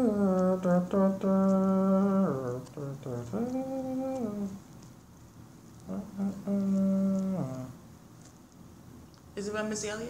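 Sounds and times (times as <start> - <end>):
person humming a tune: 0.0 - 4.7, 5.8 - 7.8.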